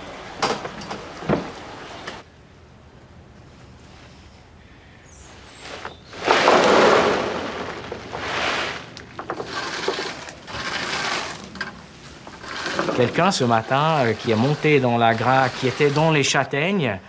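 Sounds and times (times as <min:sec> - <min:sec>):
chestnuts shifting and clattering: 0:06.2 - 0:16.2.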